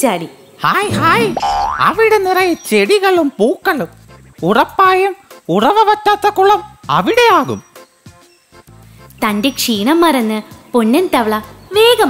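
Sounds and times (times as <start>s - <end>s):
cartoon character voice: 0.8s - 2.3s
rising cartoon sound effect: 0.9s - 2.0s.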